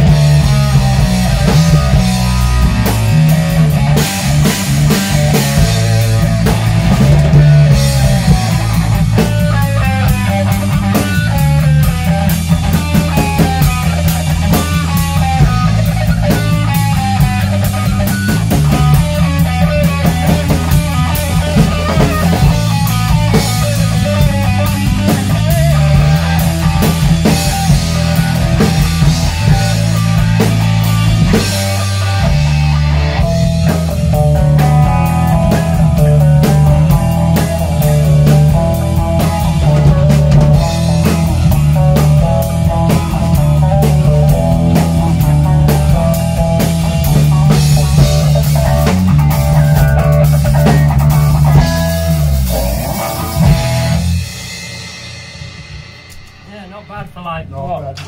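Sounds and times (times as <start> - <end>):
electric guitar: 0.0 - 56.8
drum kit: 0.0 - 58.0
electric bass guitar: 0.0 - 58.0.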